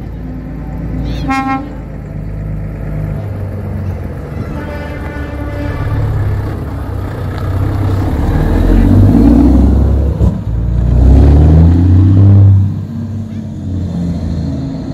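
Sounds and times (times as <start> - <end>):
truck diesel engine passing: 0.0 - 14.9.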